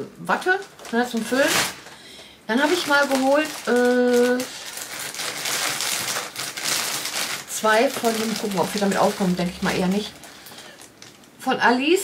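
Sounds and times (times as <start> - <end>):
packaging crinkling: 0.4 - 11.4.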